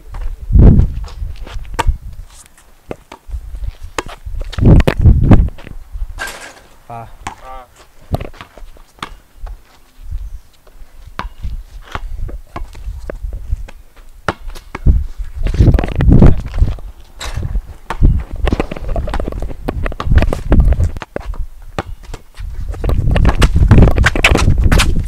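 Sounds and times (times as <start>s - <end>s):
sneakers scuffing on concrete: 0.1s - 4.6s, 5.5s - 15.7s
basketball bouncing on concrete: 7.2s - 7.5s, 8.1s - 9.6s, 11.1s - 15.0s, 17.8s - 25.0s.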